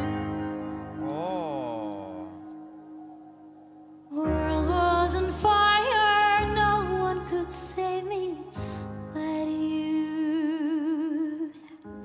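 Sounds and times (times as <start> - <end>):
soft accompaniment: 0.0 - 11.5
woman singing long note: 4.1 - 8.1.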